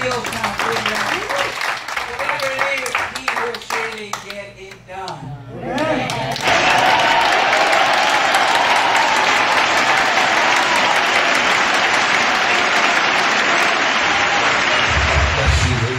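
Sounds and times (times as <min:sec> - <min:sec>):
audience applauding: 0:00.0 - 0:04.4, 0:05.8 - 0:15.9.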